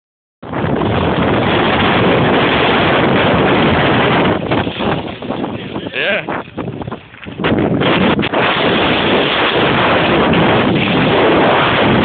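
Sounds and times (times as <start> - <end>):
wind buffeting microphone: 0.4 - 12.0.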